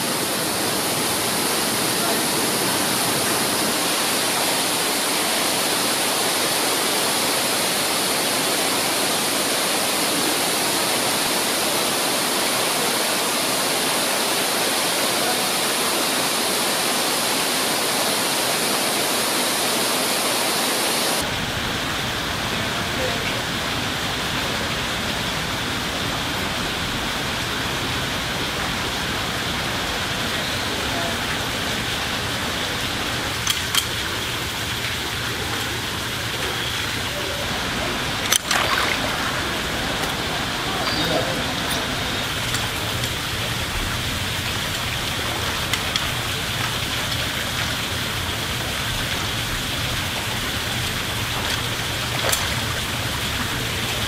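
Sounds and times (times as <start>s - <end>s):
waterfall rushing into pool: 0.0s - 54.0s
sharp water splashes: 27.4s - 54.0s.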